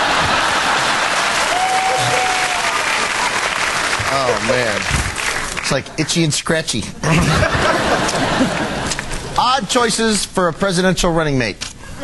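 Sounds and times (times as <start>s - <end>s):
audience applauding: 0.0s - 6.3s.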